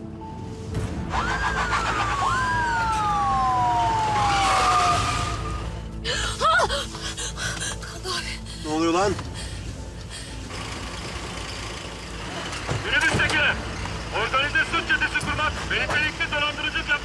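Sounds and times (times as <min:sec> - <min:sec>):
dramatic background music: 0:00.0 - 0:17.0
police car siren wailing: 0:01.1 - 0:05.8.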